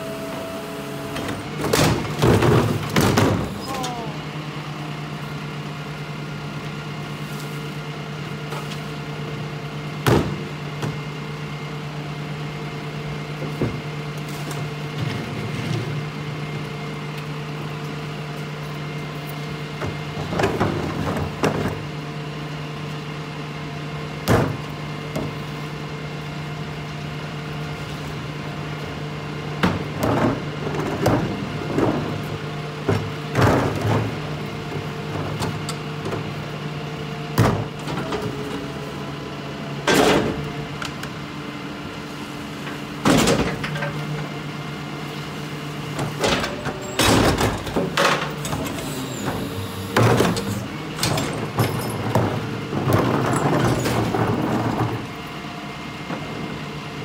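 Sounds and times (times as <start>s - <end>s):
garbage truck idling: 0.0s - 57.0s
trash carts knocking and clattering: 1.2s - 4.0s, 10.0s - 11.0s, 19.7s - 21.9s, 24.2s - 25.5s, 29.5s - 36.4s, 37.3s - 38.7s, 39.8s - 41.1s, 42.6s - 44.3s, 45.9s - 55.3s.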